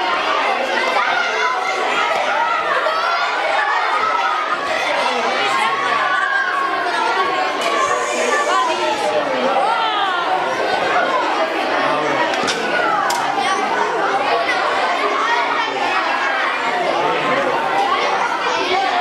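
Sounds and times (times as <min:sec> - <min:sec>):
children chattering in a hall: 0:00.0 - 0:19.0.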